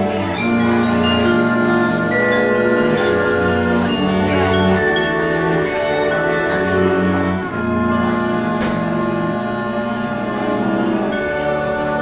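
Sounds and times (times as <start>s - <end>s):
ensemble playing sustained chords: 0.0s - 12.0s.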